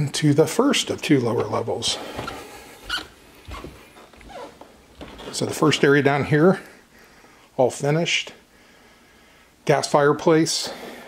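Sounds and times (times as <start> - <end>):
footsteps on carpeted stairs: 1.2 - 5.8.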